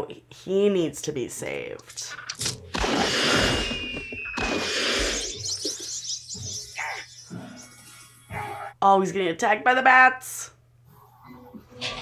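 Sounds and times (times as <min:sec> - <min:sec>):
action sound effects: 0:02.3 - 0:08.4.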